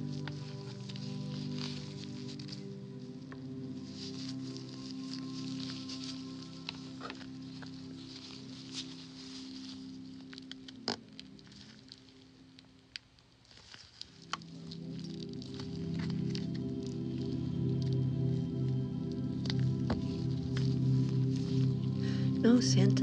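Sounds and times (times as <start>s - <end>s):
gloves and toy crackling: 0.0s - 23.0s
soft background music: 0.0s - 23.0s.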